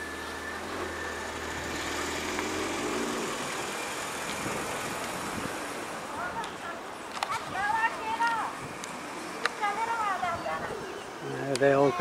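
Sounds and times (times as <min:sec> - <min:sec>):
car driving past: 0:00.0 - 0:06.1
street traffic noise: 0:00.0 - 0:12.0.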